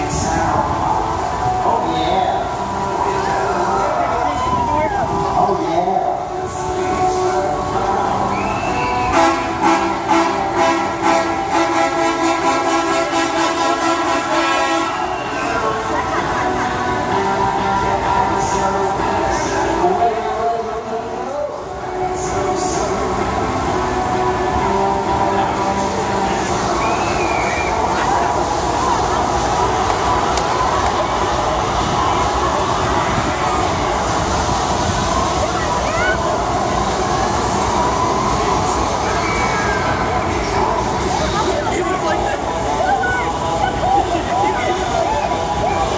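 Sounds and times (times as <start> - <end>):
amusement ride rumbling: 0.0 - 45.9
people's voices: 0.0 - 45.9.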